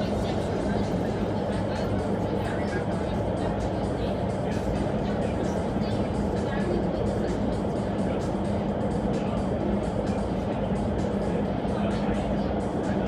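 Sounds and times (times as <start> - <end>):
low fan hum: 0.0 - 13.0.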